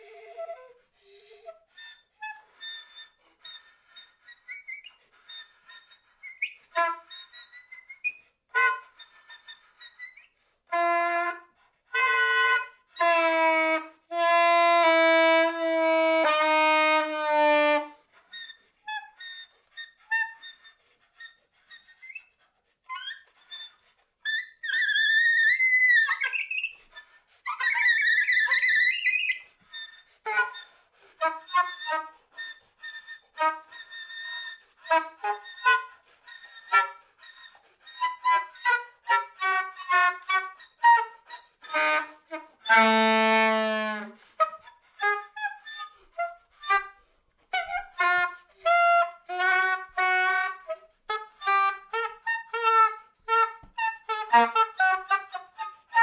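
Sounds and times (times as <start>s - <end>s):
soprano saxophone: 0.0s - 20.7s, 22.9s - 56.0s.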